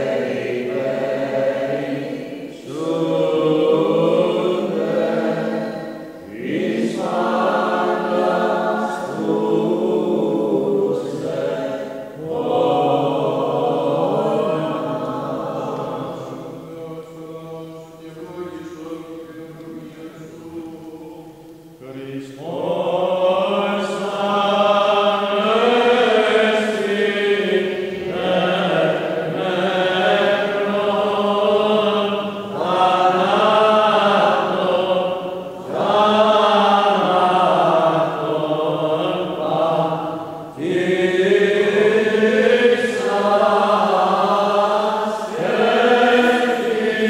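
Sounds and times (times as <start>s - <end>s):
person singing liturgical chant: 0.0s - 47.0s.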